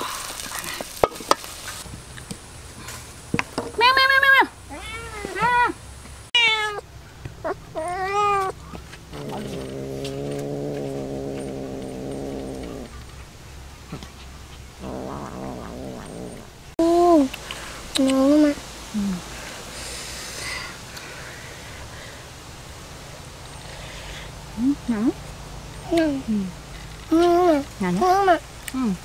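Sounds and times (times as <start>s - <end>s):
young cats meowing: 4.7s - 5.8s, 6.4s - 13.0s, 14.8s - 16.6s
cat yowling low: 7.8s - 12.9s.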